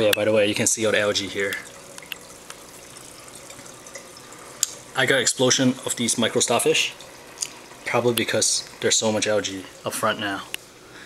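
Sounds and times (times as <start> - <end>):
water trickling: 0.6 - 10.5.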